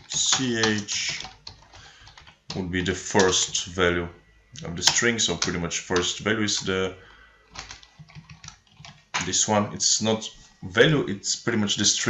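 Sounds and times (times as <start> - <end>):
soft keyboard typing: 0.0 - 3.7, 4.8 - 6.8, 7.5 - 9.4.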